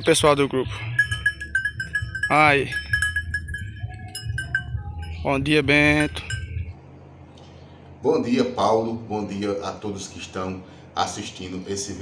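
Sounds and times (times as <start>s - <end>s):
sheep bells tinkling: 0.7s - 6.7s.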